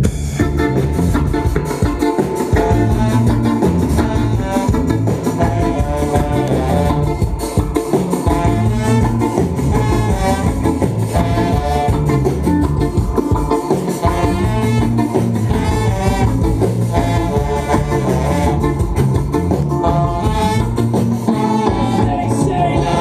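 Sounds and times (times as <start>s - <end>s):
drums: 0.0s - 23.0s
electric guitar: 0.0s - 23.0s
horns: 0.0s - 23.0s.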